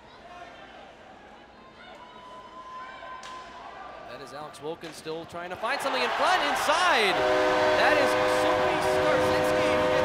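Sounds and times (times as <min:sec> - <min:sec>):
long held call: 0:06.7 - 0:10.0.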